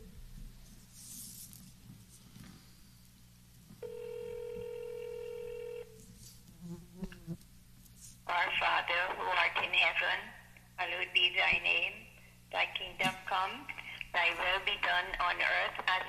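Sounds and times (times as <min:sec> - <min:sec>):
telephone ringback tone: 0:03.8 - 0:06.0
voice on telephone line: 0:08.3 - 0:12.0, 0:12.6 - 0:16.0.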